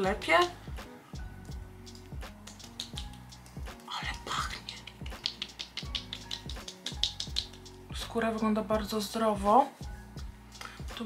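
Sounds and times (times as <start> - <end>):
quiet background music: 0.0 - 11.0
fingertips tapping on skin: 1.5 - 7.9.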